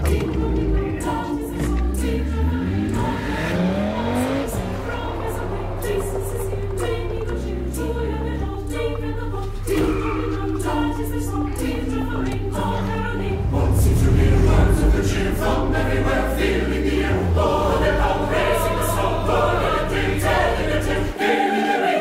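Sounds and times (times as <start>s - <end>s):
car engine revving: 0.0s - 21.2s
choir singing over music: 0.0s - 22.0s.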